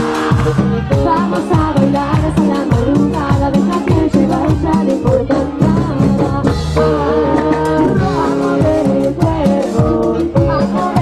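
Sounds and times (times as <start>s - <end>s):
drums: 0.0s - 11.0s
electric guitar: 0.0s - 11.0s
keyboard: 0.0s - 11.0s
person singing: 0.0s - 11.0s.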